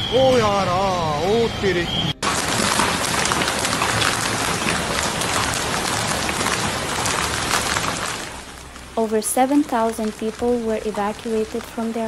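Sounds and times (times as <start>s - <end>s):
hail and rain pelting ground: 2.2s - 12.0s.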